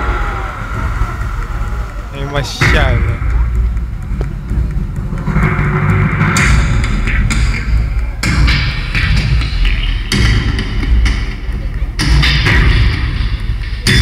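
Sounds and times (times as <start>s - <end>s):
loud live music with heavy bass: 0.0s - 14.0s.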